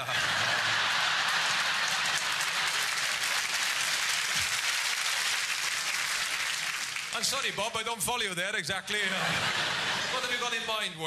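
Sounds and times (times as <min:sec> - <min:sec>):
audience laughing: 0:00.0 - 0:03.2, 0:08.8 - 0:10.8
audience applauding: 0:00.0 - 0:07.6.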